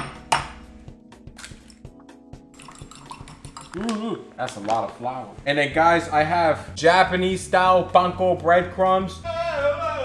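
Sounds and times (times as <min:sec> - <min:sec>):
faint background music: 0:00.0 - 0:10.0
egg cracking on bowl rim: 0:02.6 - 0:04.0.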